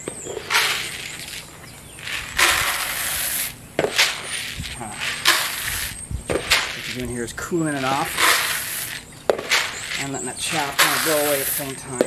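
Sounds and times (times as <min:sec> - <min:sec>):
coffee beans pouring: 0:00.4 - 0:07.1, 0:07.8 - 0:11.8.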